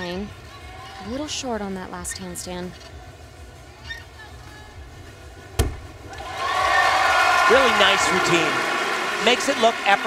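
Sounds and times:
deep thud of landing on mat: 0:05.6 - 0:06.0
crowd cheering and applause: 0:06.0 - 0:10.0.

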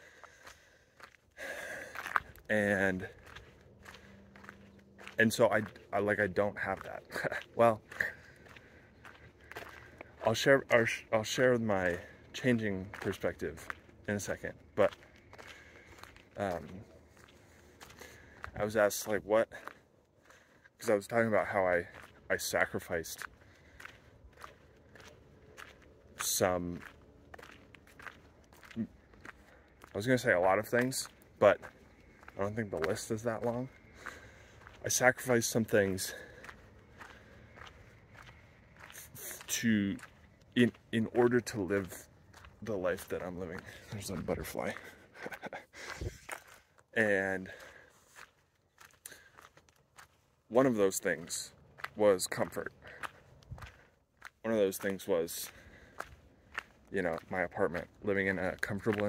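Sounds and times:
footsteps on dirt trail: 0:00.0 - 0:59.0
man's voice: 0:02.4 - 0:03.2, 0:05.0 - 0:08.2, 0:10.2 - 0:15.0, 0:16.4 - 0:16.9, 0:18.6 - 0:19.6, 0:20.8 - 0:23.3, 0:26.2 - 0:26.9, 0:29.9 - 0:31.7, 0:32.4 - 0:33.8, 0:34.8 - 0:36.3, 0:39.0 - 0:46.0, 0:47.0 - 0:47.6, 0:50.5 - 0:52.7, 0:54.5 - 0:55.6, 0:57.0 - 0:59.0.

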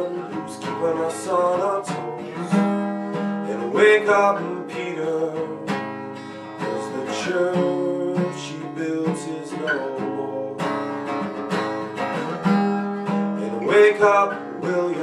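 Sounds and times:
person singing: 0:00.0 - 0:10.8, 0:12.5 - 0:15.0
acoustic guitar strumming: 0:00.0 - 0:15.0.

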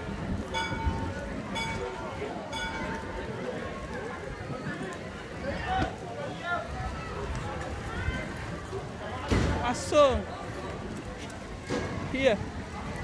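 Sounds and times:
people's voices: 0:00.0 - 0:13.0
wind rumbling on microphone: 0:00.0 - 0:13.0.

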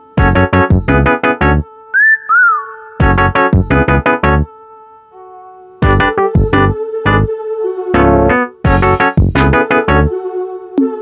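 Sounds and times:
staccato keyboard chords with bass: 0:00.2 - 0:01.6, 0:03.0 - 0:04.5, 0:05.8 - 0:07.3, 0:08.0 - 0:10.1
held synth pad: 0:01.6 - 0:03.9
whistle-like sliding notes: 0:01.9 - 0:03.5.

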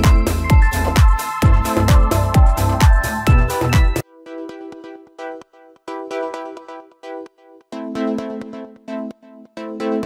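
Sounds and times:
electronic dance music: 0:00.0 - 0:04.0.

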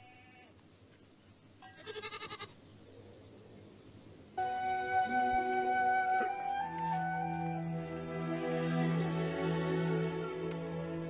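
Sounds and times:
goat bleating: 0:00.0 - 0:00.5, 0:01.6 - 0:02.6.

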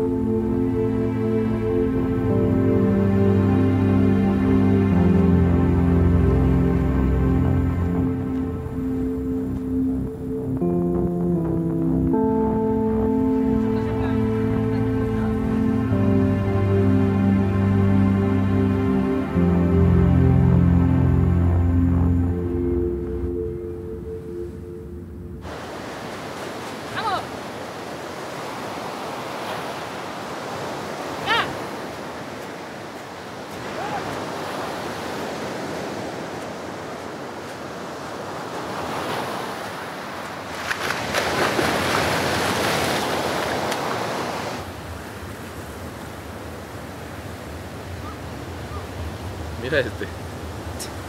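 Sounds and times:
music: 0:00.0 - 0:25.5
wind: 0:00.0 - 0:51.0
surf breaking on beach: 0:25.4 - 0:50.9.

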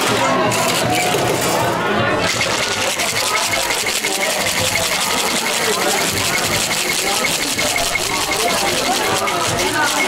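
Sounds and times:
ice rattling in cocktail shaker: 0:02.2 - 0:10.0.

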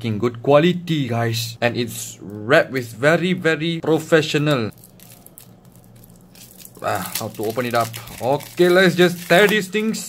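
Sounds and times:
plastic shrink wrap crinkling: 0:04.7 - 0:10.0.

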